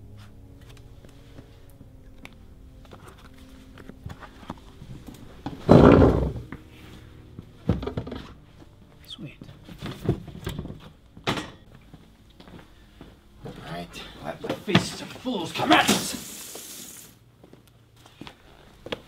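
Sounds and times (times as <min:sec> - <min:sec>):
chairs and people shuffling: 0:02.9 - 0:11.4, 0:12.4 - 0:16.7.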